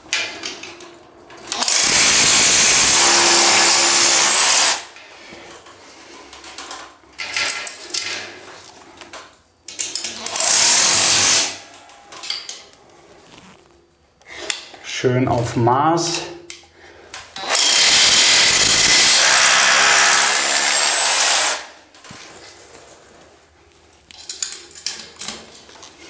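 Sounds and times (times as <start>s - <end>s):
rotary hammer drilling into wall: 1.5s - 4.9s, 10.1s - 11.6s, 17.4s - 21.7s.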